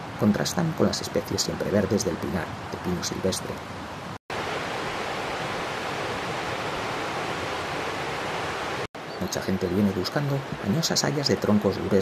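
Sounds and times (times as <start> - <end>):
stream rushing over rocks: 3.8 - 8.9.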